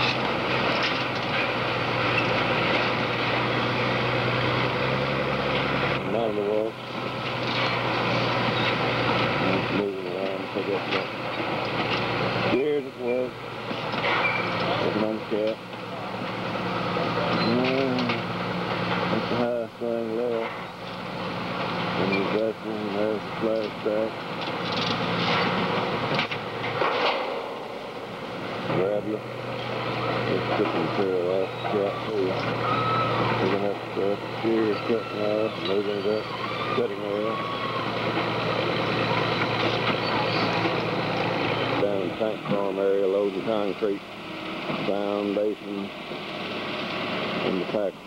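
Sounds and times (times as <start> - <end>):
diesel engine running: 0.0 - 48.0
indistinct voices: 9.3 - 11.0, 12.4 - 13.4, 14.4 - 18.3, 21.9 - 24.2, 27.5 - 40.9, 41.5 - 44.0.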